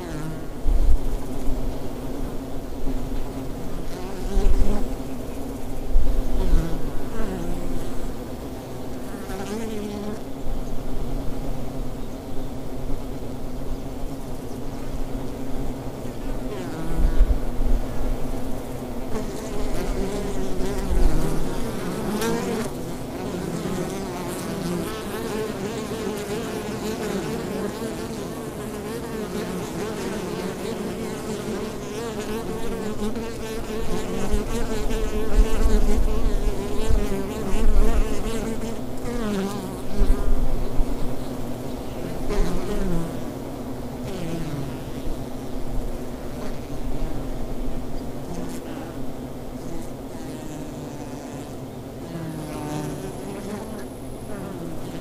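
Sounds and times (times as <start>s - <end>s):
bees buzzing: 0.0s - 12.0s, 12.6s - 55.0s
single bee passing close: 0.0s - 55.0s.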